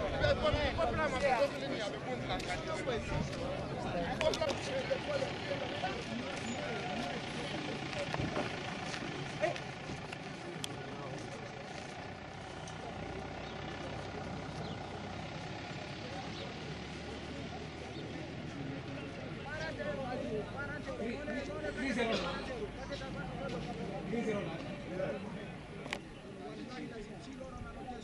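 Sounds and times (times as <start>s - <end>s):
faint voices: 0.0s - 28.0s.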